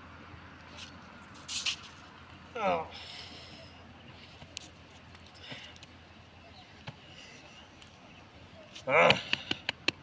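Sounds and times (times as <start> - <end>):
rustling on concrete: 0.6 - 2.4.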